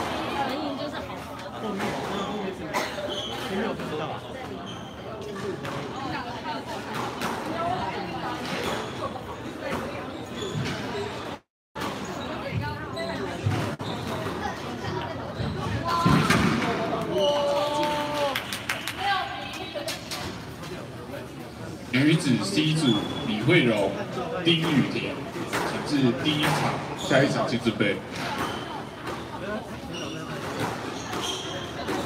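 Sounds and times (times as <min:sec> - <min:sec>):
indistinct voices in echoing hall: 0:00.0 - 0:32.0.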